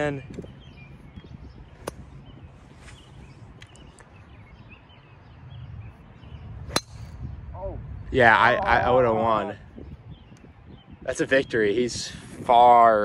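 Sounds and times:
outdoor background noise: 0:00.0 - 0:13.0
golf club striking ball: 0:06.7 - 0:07.2.

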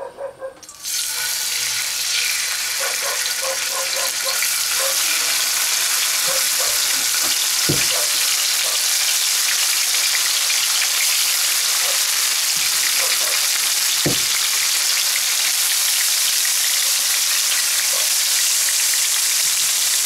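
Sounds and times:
meat sizzling in oil: 0:00.6 - 0:20.0
soft knocks: 0:07.0 - 0:08.0, 0:14.0 - 0:14.4.

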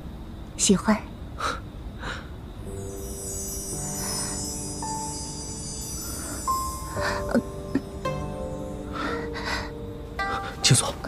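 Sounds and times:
wind chime sweep: 0:02.6 - 0:10.6.

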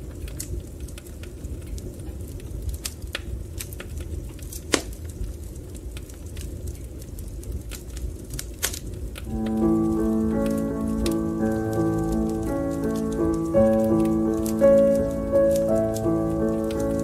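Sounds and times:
fireplace crackling: 0:00.0 - 0:17.0
slow instrumental music: 0:09.3 - 0:17.0.

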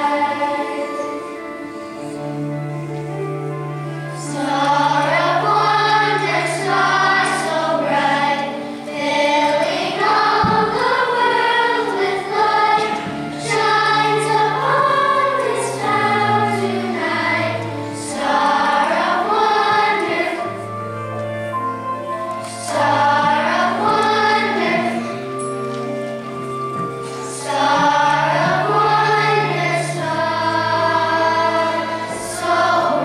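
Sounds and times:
children's choir singing: 0:00.0 - 0:33.0.

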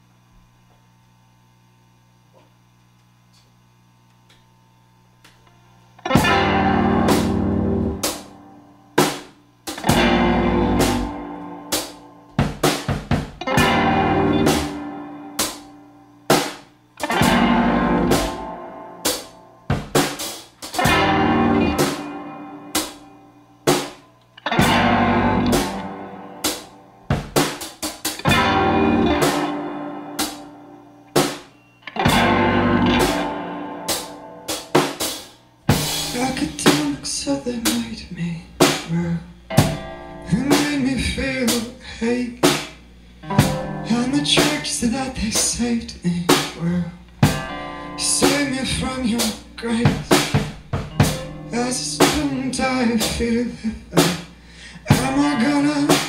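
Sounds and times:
electric guitar: 0:05.3 - 0:56.0
keyboard chords: 0:06.0 - 0:45.1, 0:47.0 - 0:53.4
drum kit: 0:06.1 - 0:56.0.

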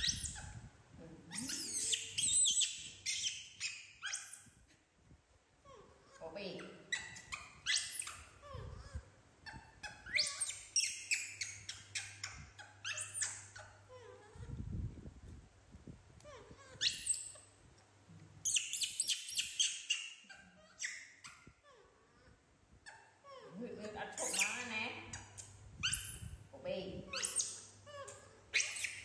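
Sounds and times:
pets squealing and whining: 0:00.0 - 0:00.7, 0:01.3 - 0:04.5, 0:05.7 - 0:14.6, 0:16.3 - 0:17.5, 0:27.1 - 0:29.0.

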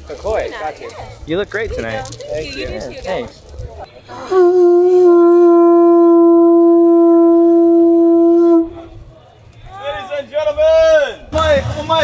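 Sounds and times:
conch shell trumpet blast: 0:04.1 - 0:09.0.

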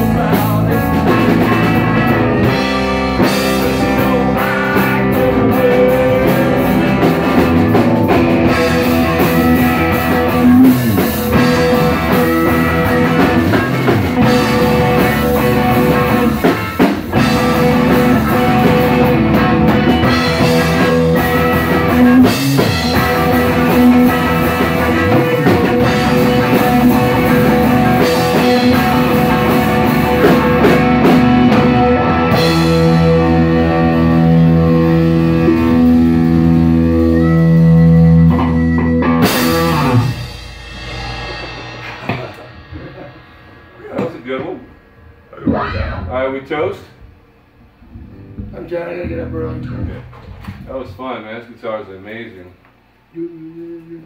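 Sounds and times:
live band playing: 0:00.0 - 0:46.3, 0:47.8 - 0:51.0.

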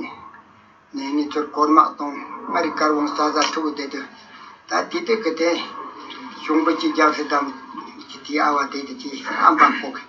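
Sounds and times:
elderly man talking: 0:00.9 - 0:10.0.

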